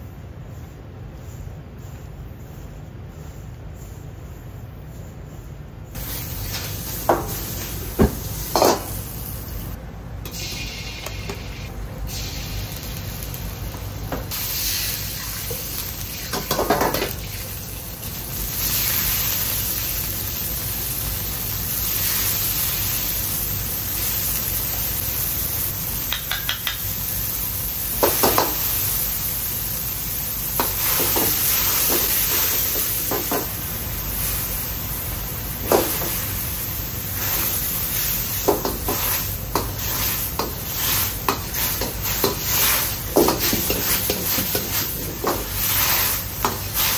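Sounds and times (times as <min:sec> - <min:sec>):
food sizzling in a wok: 0:05.9 - 0:46.9
gas burner running: 0:05.9 - 0:46.9.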